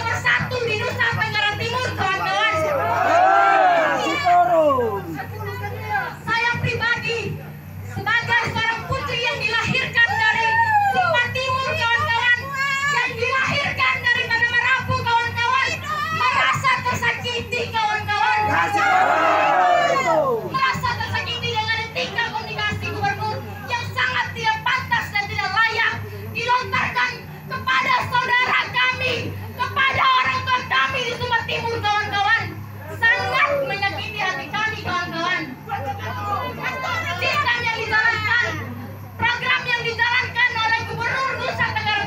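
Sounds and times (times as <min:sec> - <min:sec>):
woman speaking into a microphone: 0:00.0 - 0:02.9, 0:03.9 - 0:18.8, 0:19.8 - 0:35.6, 0:36.6 - 0:42.0.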